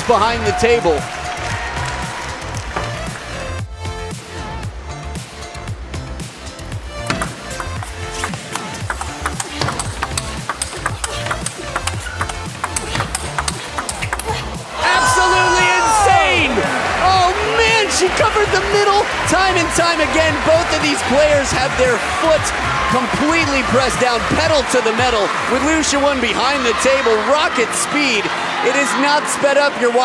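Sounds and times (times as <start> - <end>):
background music: 0.0 - 30.0
table tennis ball clicking: 7.1 - 14.4
people shouting: 12.8 - 25.2.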